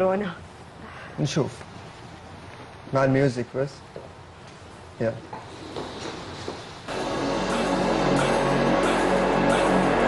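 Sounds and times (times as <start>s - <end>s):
background music: 6.9s - 10.0s.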